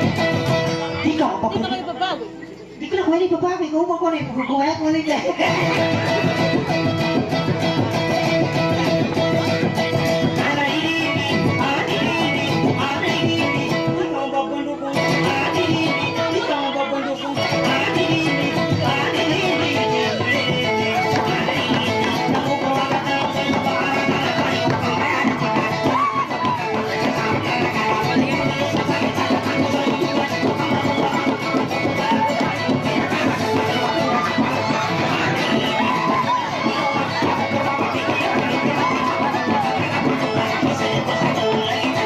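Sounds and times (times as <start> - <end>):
plucked guitar and lute music: 0.0 - 2.7, 5.3 - 42.0.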